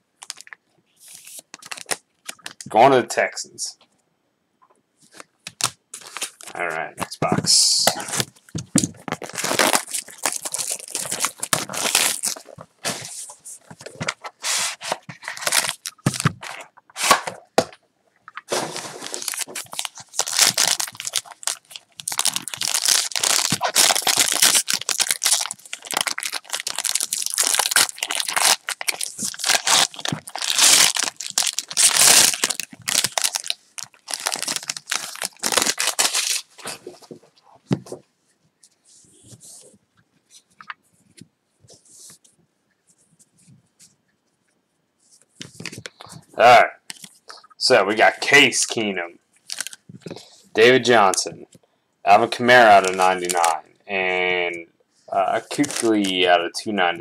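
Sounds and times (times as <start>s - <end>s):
foil pack tearing and crinkling: 9.0s - 13.1s, 14.3s - 17.2s, 18.5s - 36.7s, 49.5s - 49.8s, 52.7s - 53.6s, 55.4s - 56.0s.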